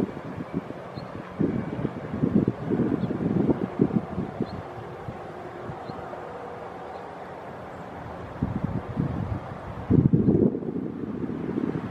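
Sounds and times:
helicopter running: 0.0 - 11.8
wind buffeting microphone: 0.0 - 11.9.

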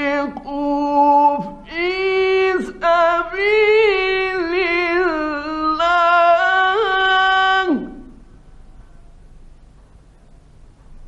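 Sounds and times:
man reciting melodically: 0.0 - 8.2
recording hiss: 0.0 - 11.0.

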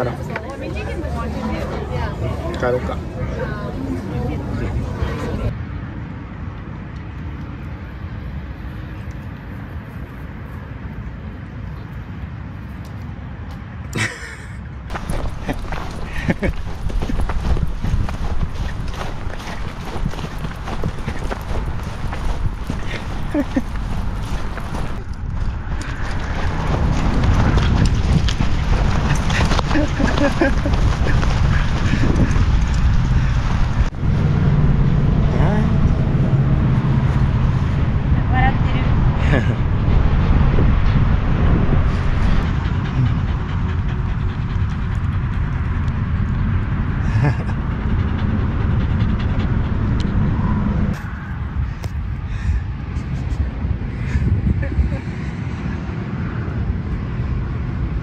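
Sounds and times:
steady low rumble: 14.0 - 58.0
footsteps in grass: 14.9 - 32.6
wind buffeting microphone: 14.9 - 58.0.

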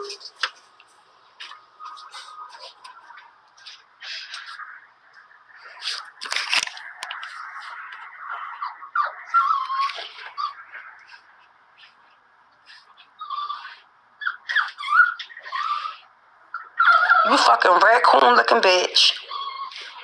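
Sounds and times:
dog whining and yelping: 7.4 - 12.0, 12.6 - 17.6, 19.0 - 20.0.

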